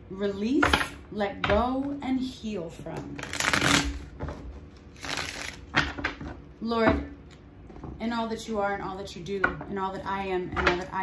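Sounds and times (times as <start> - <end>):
cards rustling: 4.8 - 5.7
cards riffle shuffling: 4.9 - 5.7.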